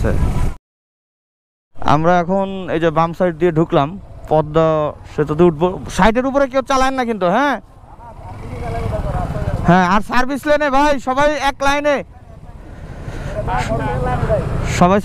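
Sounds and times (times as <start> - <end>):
man talking: 1.8 - 12.6, 13.2 - 15.0
motorcycle engine: 2.6 - 14.9.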